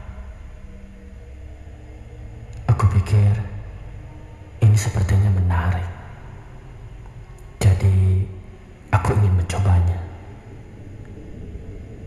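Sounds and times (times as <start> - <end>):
dark music drone: 0.0 - 12.0.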